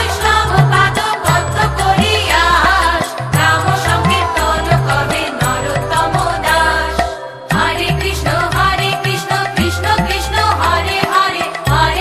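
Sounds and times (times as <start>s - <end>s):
bass and percussion: 0.0s - 12.0s
women singing devotional chant: 0.0s - 12.0s.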